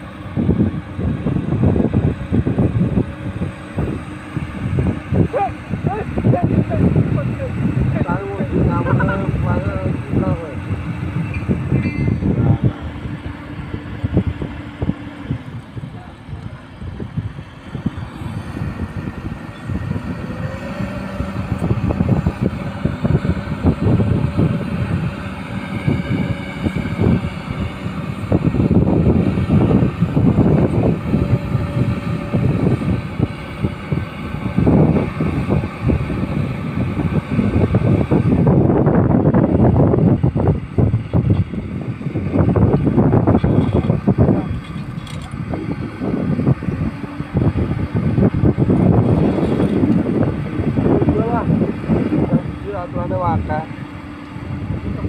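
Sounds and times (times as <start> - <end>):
excavator engines running: 0.0 - 55.0
wind buffeting microphone: 0.0 - 55.0.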